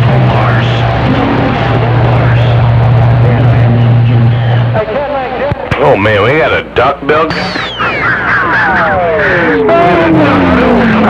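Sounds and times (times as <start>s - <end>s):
radio static: 0.0s - 11.0s
steady low hum: 0.0s - 11.0s
faint garbled voices: 7.2s - 11.0s.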